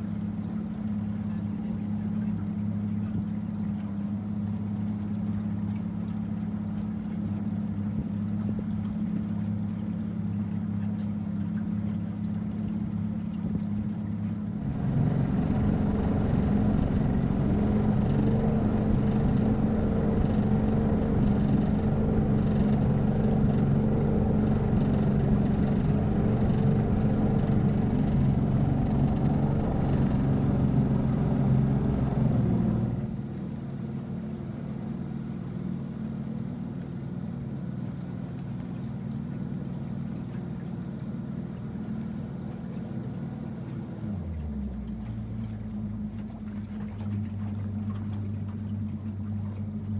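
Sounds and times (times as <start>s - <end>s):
boat motor humming: 0.0s - 49.9s.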